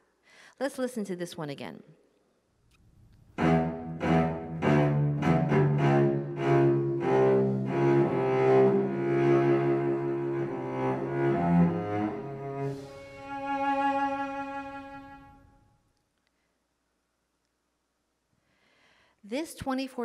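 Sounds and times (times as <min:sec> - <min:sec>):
cello playing: 0:03.2 - 0:15.7.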